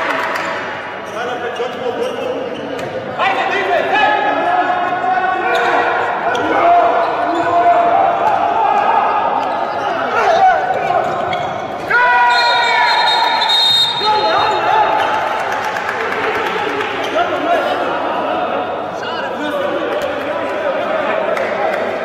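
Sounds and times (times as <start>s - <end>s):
ball bouncing on indoor court: 1.8s - 3.1s.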